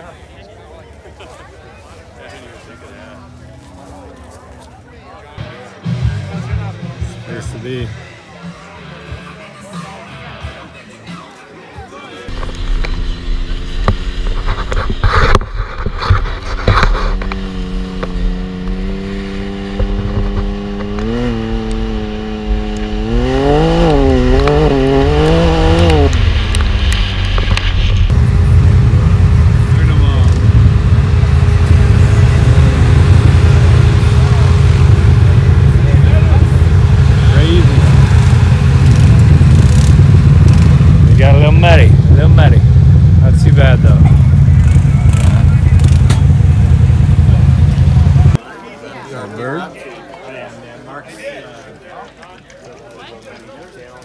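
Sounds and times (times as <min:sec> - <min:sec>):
voices: 0:00.0 - 0:15.0, 0:16.1 - 0:54.0
engine revving: 0:12.3 - 0:48.4
low rumble: 0:12.3 - 0:48.4.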